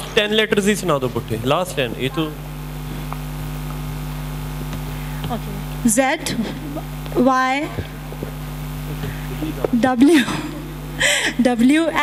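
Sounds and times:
electrical mains hum: 0.0s - 12.0s
woman speaking through microphone: 5.2s - 7.9s, 11.4s - 12.0s.

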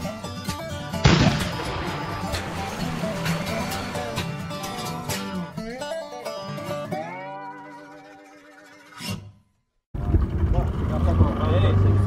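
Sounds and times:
picked acoustic guitar music: 0.0s - 9.1s
cannon shot: 1.0s - 5.4s.

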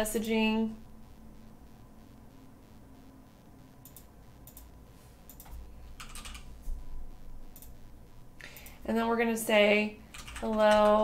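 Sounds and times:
typing on computer keyboard: 5.3s - 6.5s, 10.1s - 11.0s.

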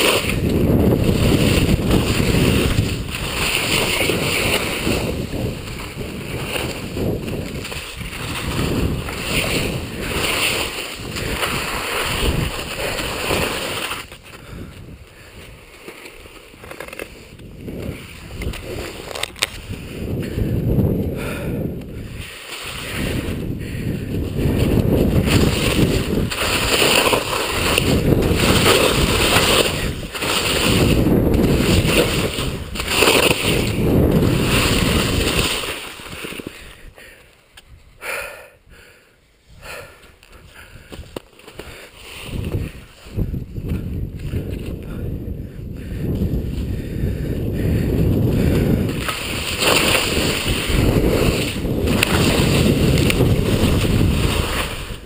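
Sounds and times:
wind rushing over microphone: 0.0s - 15.8s, 16.5s - 37.0s, 39.5s - 55.0s
skis scraping on packed snow: 0.0s - 20.5s, 21.2s - 37.2s, 39.7s - 44.8s, 46.1s - 55.0s.

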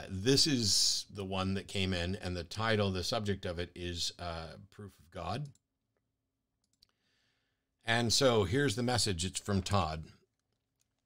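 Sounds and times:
man's voice: 7.9s - 10.1s.

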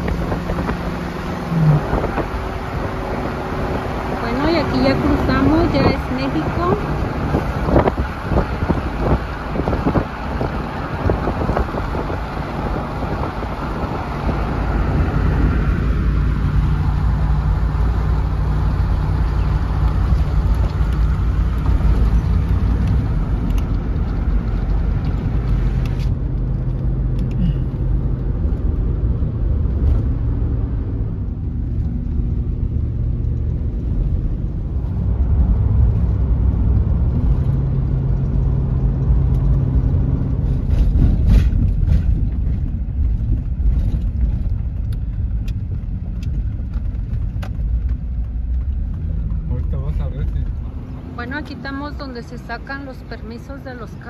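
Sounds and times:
engine hum: 0.0s - 54.0s
road rumble inside car: 0.0s - 54.0s.

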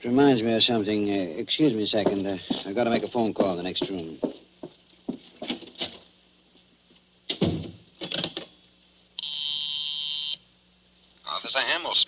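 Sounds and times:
telephone ring buzz: 9.2s - 10.4s.

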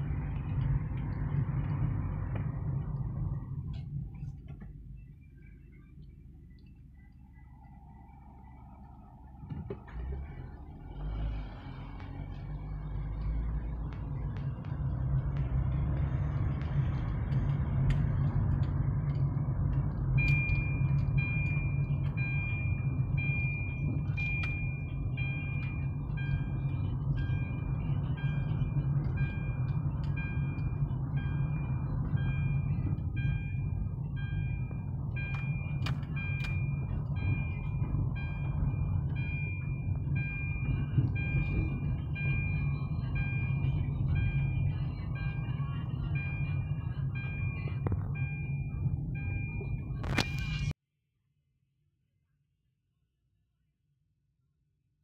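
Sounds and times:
car engine and road rumble: 0.0s - 50.8s
in-car warning beep: 20.1s - 50.8s.

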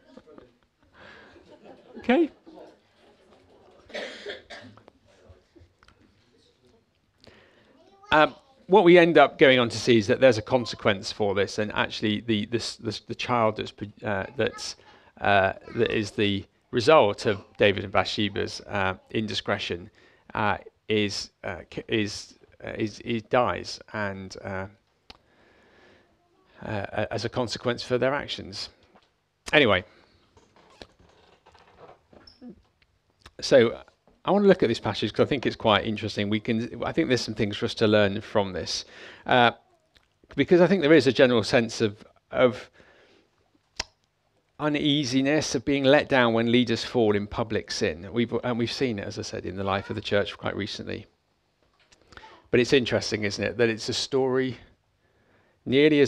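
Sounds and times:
person coughing: 3.9s - 4.8s.

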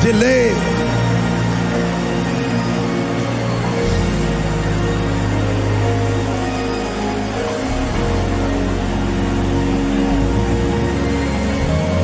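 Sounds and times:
deep steady bass drone: 0.0s - 12.0s
held music chords: 0.0s - 12.0s.

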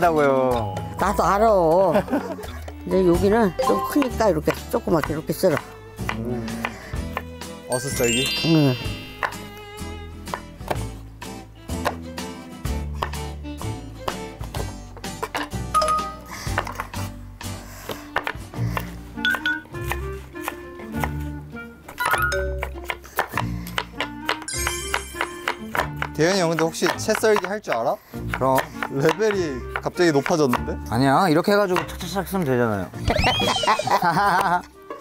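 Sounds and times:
light plinking background music: 0.0s - 35.0s
knife chopping on wooden board: 3.9s - 7.3s, 10.3s - 10.9s, 11.7s - 12.0s, 13.0s - 13.3s, 17.8s - 21.2s, 22.6s - 24.5s, 25.1s - 30.7s.

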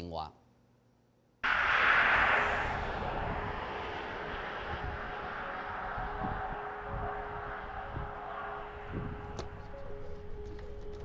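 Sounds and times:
steady outdoor rushing noise: 1.4s - 11.0s.

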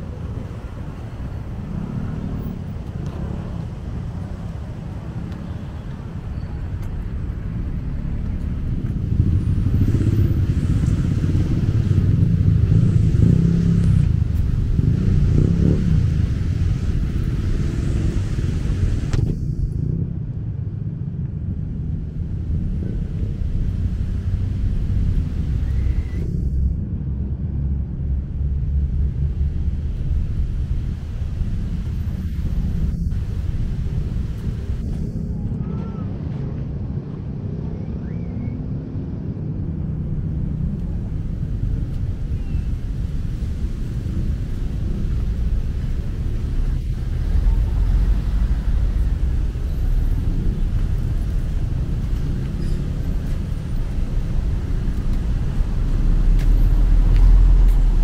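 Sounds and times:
cars and motorbikes passing: 0.0s - 58.0s
low rumble of road traffic: 0.0s - 58.0s.

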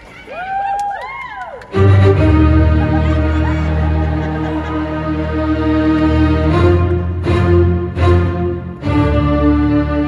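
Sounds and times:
cello bowing long notes: 1.7s - 10.0s.

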